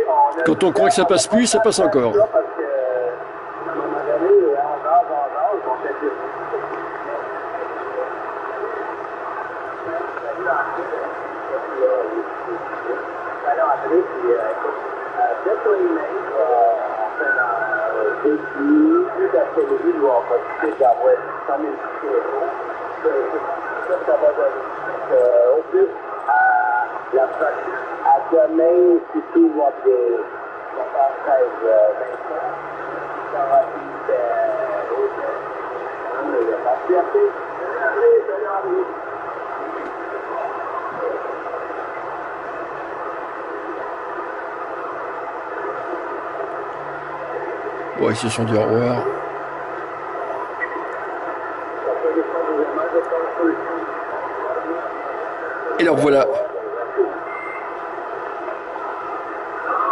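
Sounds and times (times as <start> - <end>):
receiver hiss: 0.0 - 59.9
narrow-band radio speech: 0.3 - 2.6, 55.8 - 57.2.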